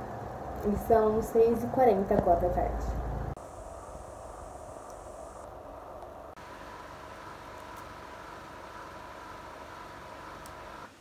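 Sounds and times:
thin high hiss: 0:03.3 - 0:11.0.

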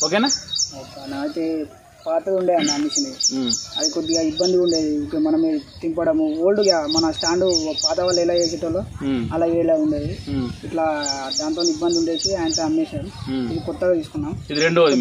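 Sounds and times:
men talking: 0:00.0 - 0:15.0.

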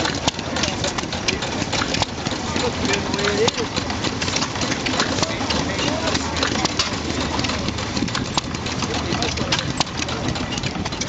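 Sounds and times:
slow gas engine clicking: 0:00.0 - 0:11.0.

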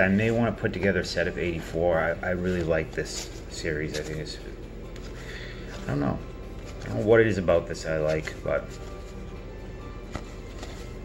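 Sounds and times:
faint film music on tv: 0:00.0 - 0:11.0.

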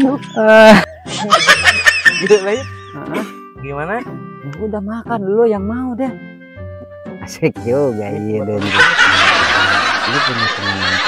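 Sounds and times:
chuckling laughter: 0:01.1 - 0:03.0, 0:08.6 - 0:11.0.

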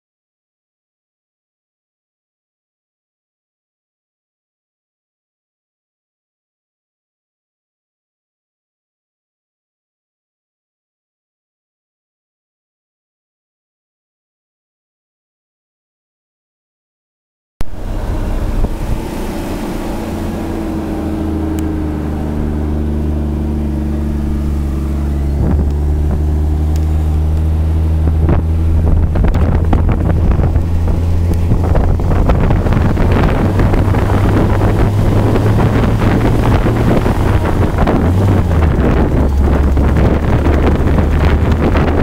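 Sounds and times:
truck engine drone: 0:17.6 - 0:42.0
wind on microphone: 0:17.6 - 0:42.0.

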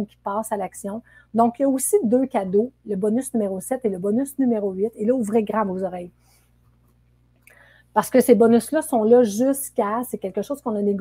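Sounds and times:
woman speaking: 0:00.0 - 0:06.2, 0:08.0 - 0:11.0.

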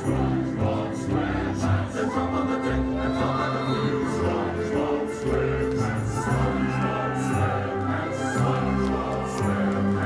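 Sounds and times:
choir-like sustained voices: 0:00.0 - 0:10.0.

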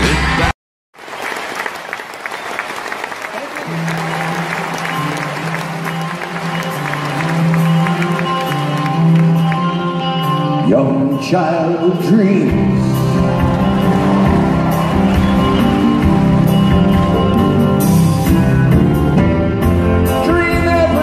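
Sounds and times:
audience applause: 0:01.0 - 0:10.0, 0:12.8 - 0:18.8.

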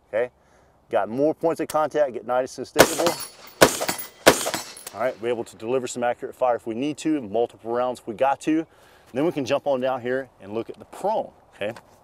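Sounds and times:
rifle shots with echo: 0:02.8 - 0:05.2.

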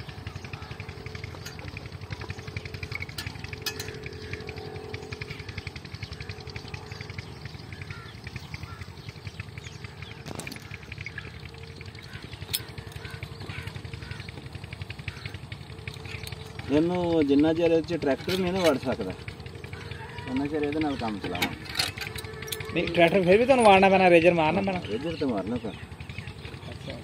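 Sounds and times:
motorcycle engine idling: 0:00.0 - 0:27.0.

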